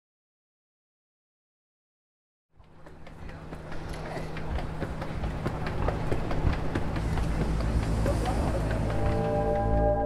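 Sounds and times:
train rattling on rails: 2.6s - 10.0s.

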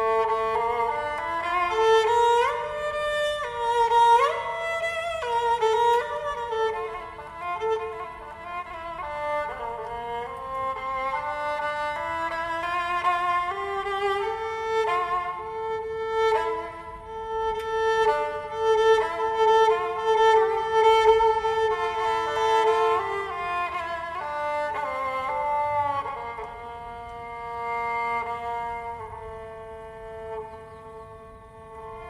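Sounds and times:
bowed lyra melody: 0.0s - 32.0s.

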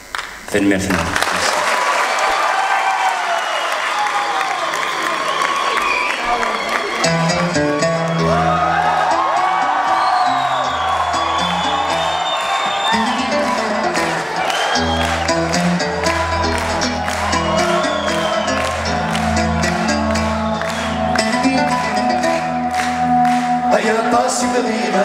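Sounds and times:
audience applauding and cheering: 0.0s - 25.0s
plucked long-necked lute: 7.0s - 9.3s, 13.4s - 23.7s.

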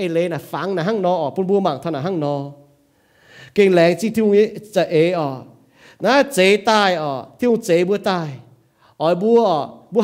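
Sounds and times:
man preaching: 0.0s - 2.7s, 3.3s - 10.0s.

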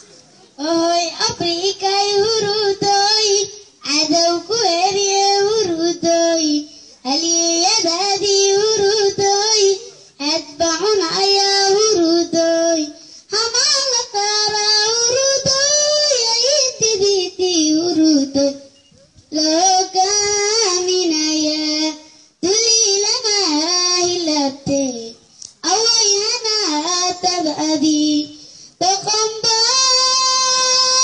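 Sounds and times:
boy singing through a pa: 0.5s - 31.0s.

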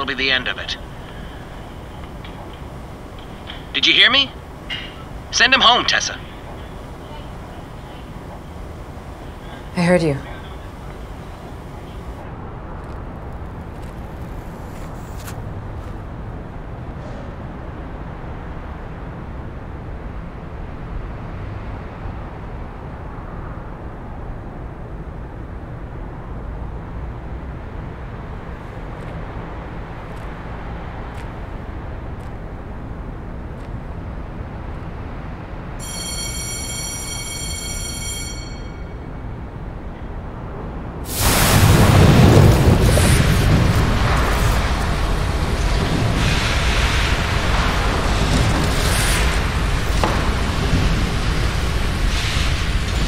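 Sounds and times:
metal-shop machinery noise: 0.0s - 12.2s
high whine: 0.0s - 12.3s, 35.8s - 39.9s
distant traffic rumble: 0.0s - 24.6s, 38.7s - 53.0s.

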